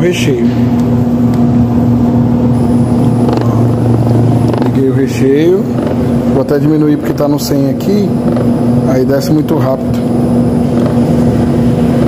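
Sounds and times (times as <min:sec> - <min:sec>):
faint high whine: 0:00.0 - 0:12.0
electric motor humming: 0:01.4 - 0:07.3, 0:10.1 - 0:12.0.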